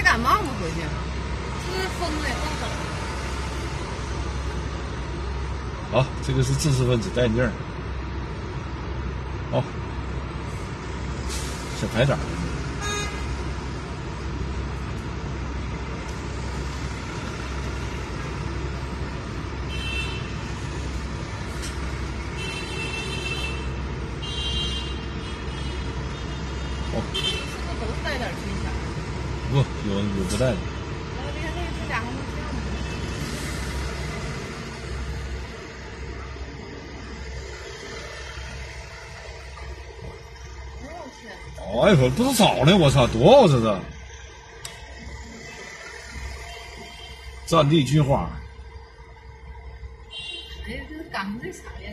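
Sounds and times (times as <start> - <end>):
vehicle engines and tyres rumbling: 0.0 - 51.9.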